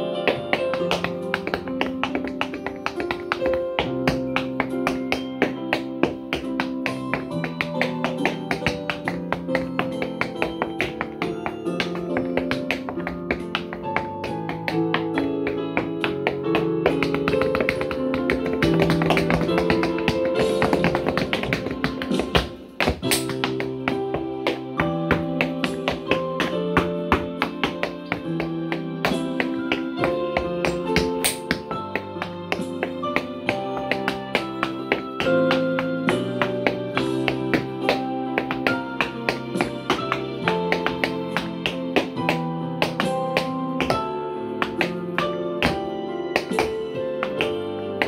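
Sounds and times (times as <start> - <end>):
music with held notes: 0.0 - 48.0
heavy foot stomp: 0.2 - 47.6
hard shoes striking wooden board: 0.3 - 44.0, 44.6 - 47.6.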